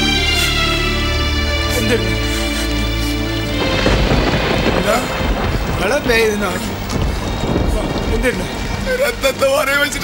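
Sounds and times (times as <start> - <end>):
rumbling rushing thunder and rain: 2.3 - 10.0.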